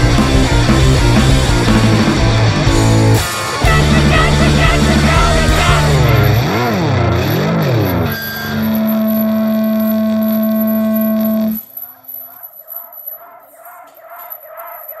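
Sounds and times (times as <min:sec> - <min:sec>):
wobbling guitar note: 0:01.5 - 0:08.2.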